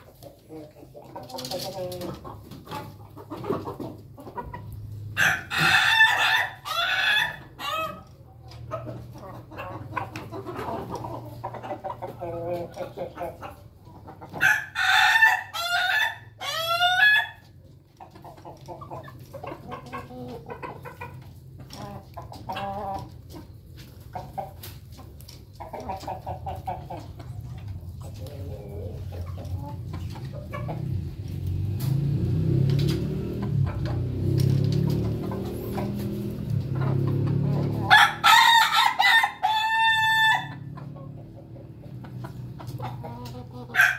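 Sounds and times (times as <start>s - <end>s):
hens clucking: 0.0s - 43.9s
rooster crowing: 5.2s - 7.8s, 37.9s - 40.7s.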